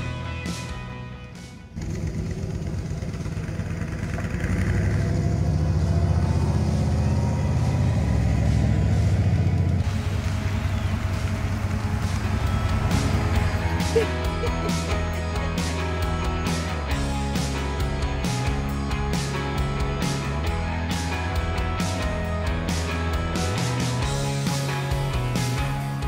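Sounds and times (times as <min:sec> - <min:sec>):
car engine driving by: 0:01.5 - 0:24.2.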